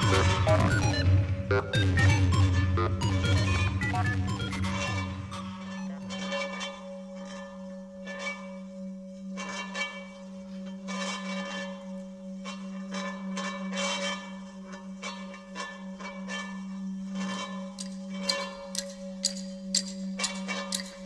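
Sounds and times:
steady low drone: 0.0 - 9.2.

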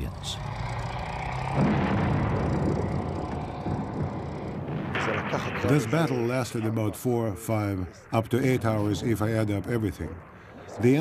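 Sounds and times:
tank engines and tracks rumbling: 0.0 - 11.0.

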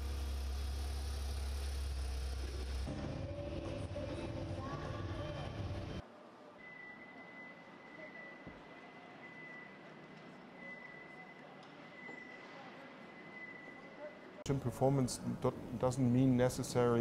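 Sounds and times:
indoor hall background noise: 2.9 - 17.0.

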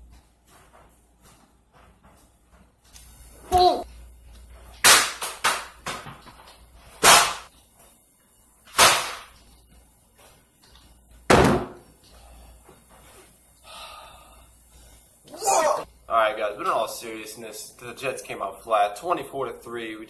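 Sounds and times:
person striking furniture: 11.3 - 11.8.

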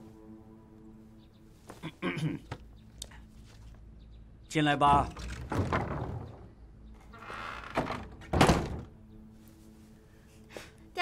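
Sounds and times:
wooden doors thunking shut: 4.9 - 6.6, 7.2 - 9.0
wooden doors scraping: 4.9 - 9.0.

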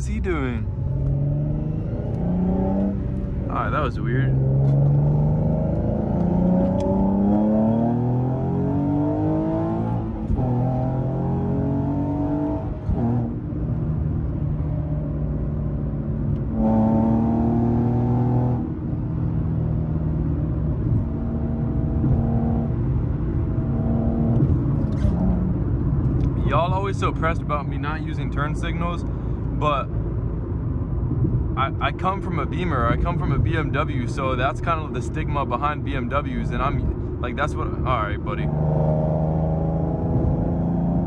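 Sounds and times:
car engine accelerating: 0.0 - 41.0.

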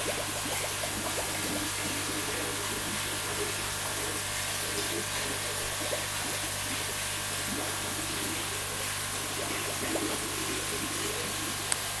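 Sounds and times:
running water: 0.0 - 12.0.

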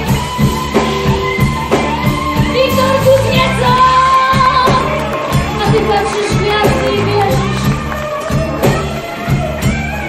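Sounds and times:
rock band playing: 0.0 - 10.0
woman singing: 2.4 - 8.8.

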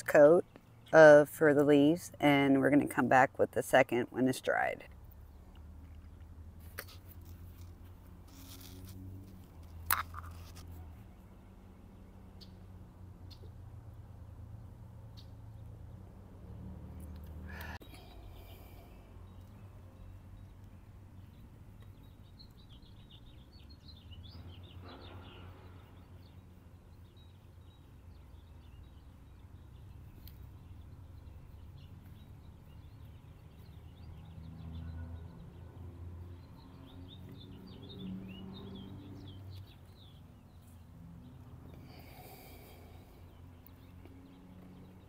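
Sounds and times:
small birds chirping: 4.0 - 16.1, 16.9 - 45.0
brief rustle: 6.6 - 10.9.

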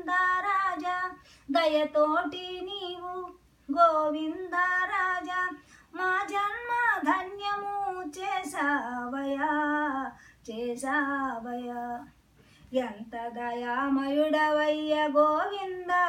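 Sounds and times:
elderly woman singing: 0.0 - 12.1, 12.7 - 16.0.

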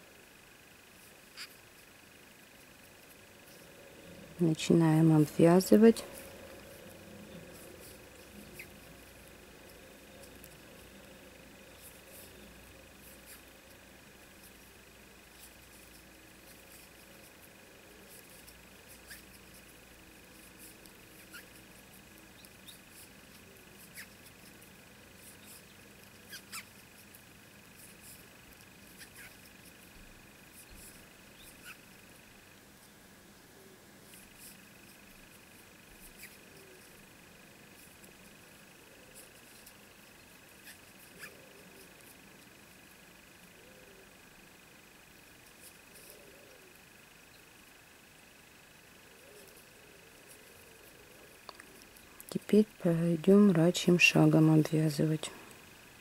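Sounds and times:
faint high-pitched whine: 0.0 - 56.0.

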